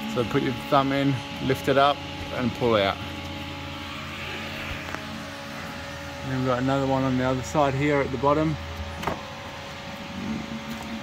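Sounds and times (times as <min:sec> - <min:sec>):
pedestal fan running: 0:00.0 - 0:11.0.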